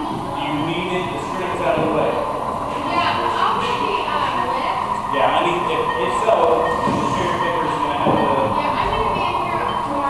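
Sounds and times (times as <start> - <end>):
indistinct talk of people: 0.0 - 10.0
steady background hum: 0.0 - 10.0.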